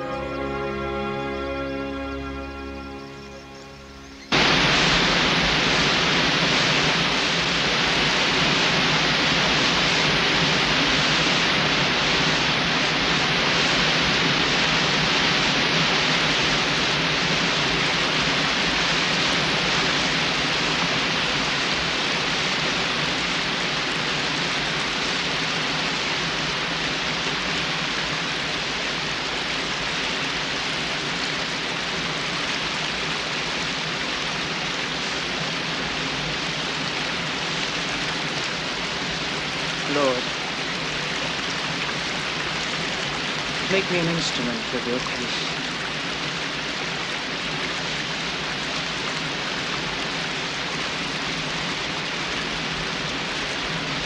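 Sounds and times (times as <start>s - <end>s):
waterfall pouring: 4.3s - 54.0s.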